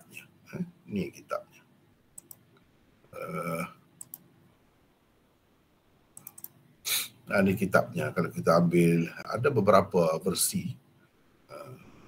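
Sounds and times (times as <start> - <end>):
computer mouse clicks: 2.2 - 2.7, 4.0 - 4.3, 6.2 - 6.6.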